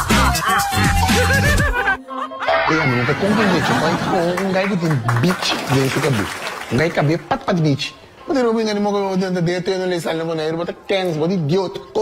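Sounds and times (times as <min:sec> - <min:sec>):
voices snickering and laughing: 0:00.2 - 0:04.3.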